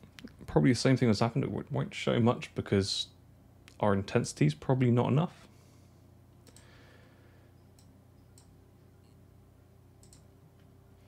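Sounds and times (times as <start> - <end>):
low steady hum: 0.0 - 11.0
computer mouse clicks: 6.4 - 6.7, 7.8 - 9.2, 10.0 - 10.3.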